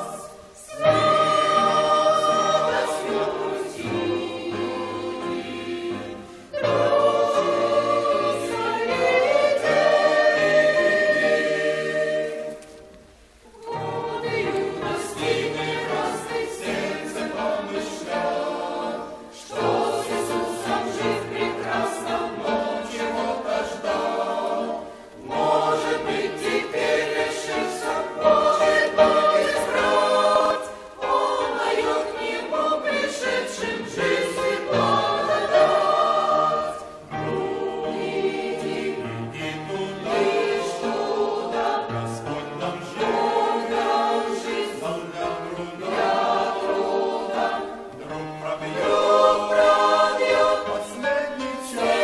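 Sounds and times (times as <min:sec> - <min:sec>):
choir singing a hymn: 0:00.0 - 0:52.0.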